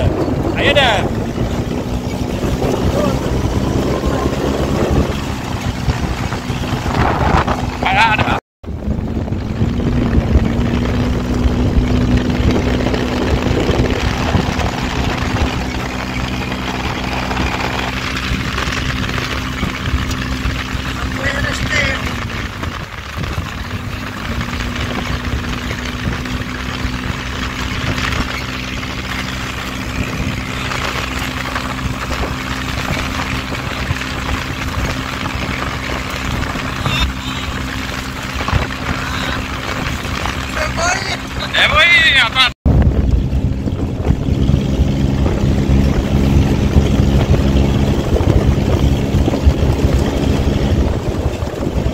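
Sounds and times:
dune buggy engine running: 0.0s - 51.9s
rushing wind: 0.0s - 51.9s.

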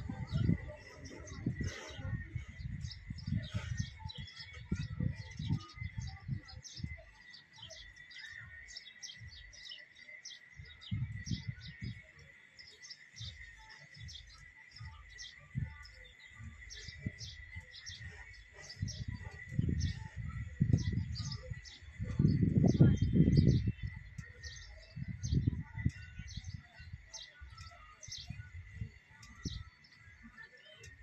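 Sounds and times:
wind rumble on microphone: 0.0s - 9.5s, 10.6s - 12.5s, 13.2s - 31.0s
small birds chirping: 0.0s - 31.0s.

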